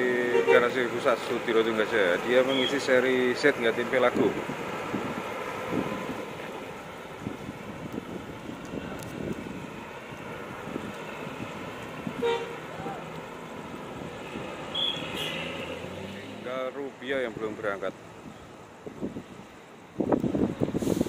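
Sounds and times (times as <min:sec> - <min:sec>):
bus engines running: 0:00.0 - 0:21.0
bus horn toot: 0:00.2 - 0:00.7, 0:12.2 - 0:12.6, 0:14.7 - 0:15.7.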